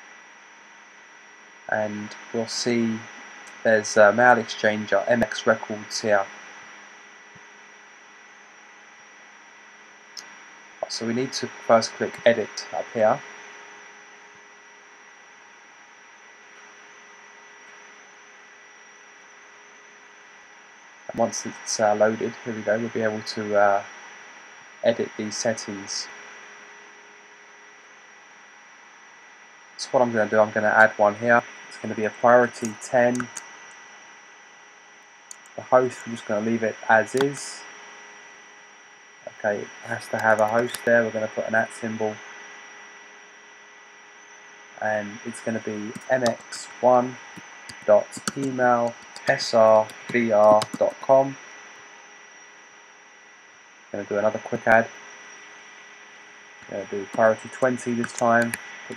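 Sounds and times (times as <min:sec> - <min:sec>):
high whine: 0:00.0 - 0:14.2, 0:14.8 - 0:26.7, 0:28.7 - 0:58.9
faint steady hiss: 0:00.0 - 0:58.9
thin electrical hum: 0:00.0 - 0:58.9
man speaking: 0:01.7 - 0:06.3, 0:10.8 - 0:13.2, 0:21.1 - 0:23.9, 0:24.8 - 0:26.1, 0:29.8 - 0:33.4, 0:35.6 - 0:37.6, 0:39.3 - 0:42.2, 0:44.8 - 0:51.4, 0:54.0 - 0:54.9, 0:56.6 - 0:58.6.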